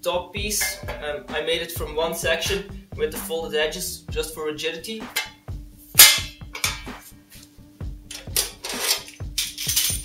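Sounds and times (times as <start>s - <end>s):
steel panel clanging on concrete: 0.6s - 1.1s, 6.0s - 7.0s.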